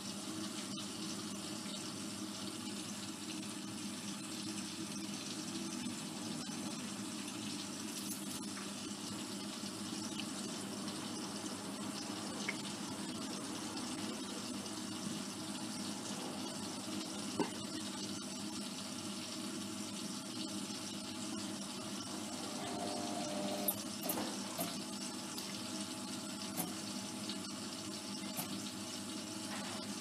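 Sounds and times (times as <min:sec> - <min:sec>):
washing machine water moving: 0:07.2 - 0:30.0.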